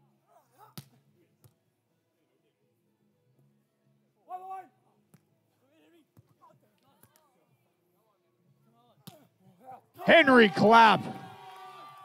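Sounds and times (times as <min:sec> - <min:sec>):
player shouting: 0:10.0 - 0:11.4.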